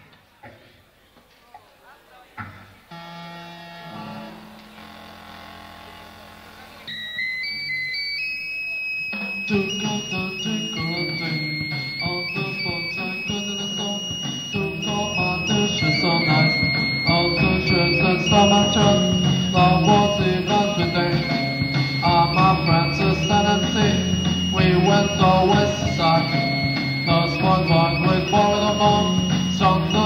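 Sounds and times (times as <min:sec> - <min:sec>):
high stepped melody line: 0:06.8 - 0:30.0
new wave rock band playing: 0:09.2 - 0:30.0
drums and bass: 0:09.3 - 0:30.0.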